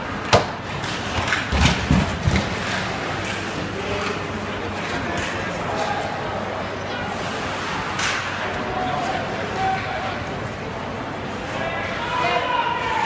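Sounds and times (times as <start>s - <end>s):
arena crowd chatter: 0.0s - 13.0s.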